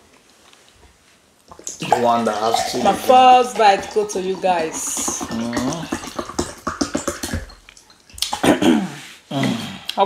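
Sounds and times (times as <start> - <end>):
wet chewing sounds: 1.4 - 8.4
person humming mm: 4.9 - 7.4, 8.9 - 10.0.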